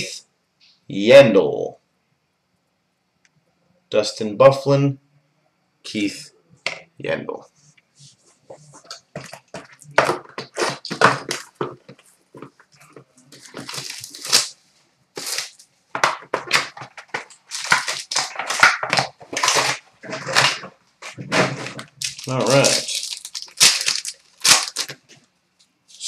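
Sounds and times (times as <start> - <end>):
cardboard and plastic tearing: 8.8 - 12.0, 12.9 - 14.5, 15.2 - 25.1
boxes and cards set down: 8.8 - 12.5, 13.3 - 14.5, 15.2 - 21.9.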